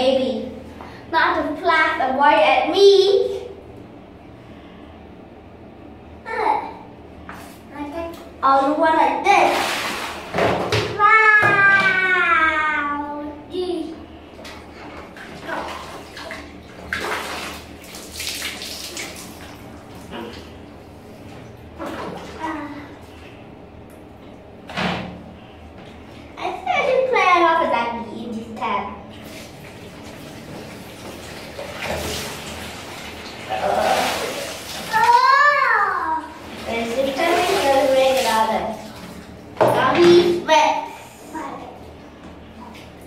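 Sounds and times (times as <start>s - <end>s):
water splashing from plastic tub: 9.3s - 11.9s, 14.4s - 20.6s, 21.2s - 22.6s, 29.1s - 35.5s, 36.2s - 40.4s
running water: 14.4s - 23.3s, 29.0s - 40.5s
child's wordless vocal calls: 34.9s - 36.4s.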